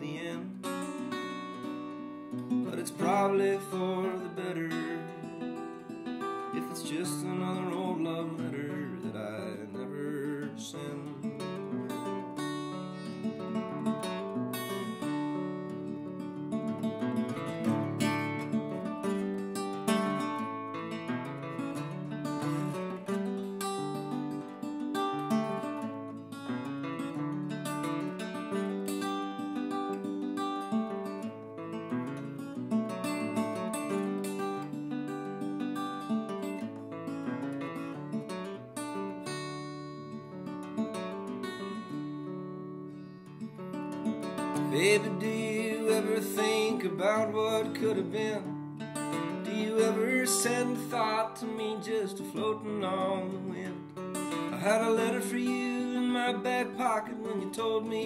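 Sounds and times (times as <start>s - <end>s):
acoustic guitar strumming and picking: 0.0s - 58.0s.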